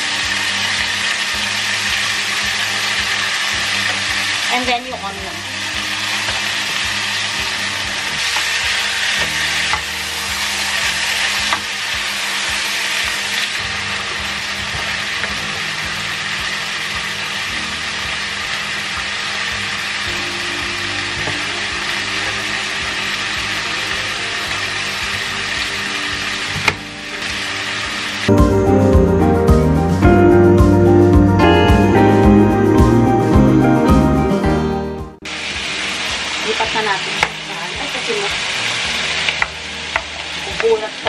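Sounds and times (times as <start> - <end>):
food sizzling in a pan: 0.0 - 28.5, 35.2 - 41.0.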